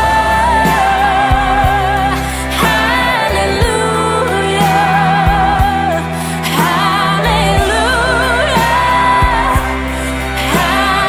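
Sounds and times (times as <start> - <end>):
sustained instrumental backing: 0.0 - 11.0
woman singing with vibrato: 0.0 - 11.0.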